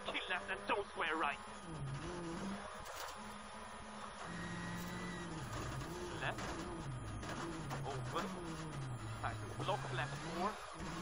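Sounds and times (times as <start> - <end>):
gravel road noise: 0.0 - 11.0
car engine downshifting: 1.4 - 11.0.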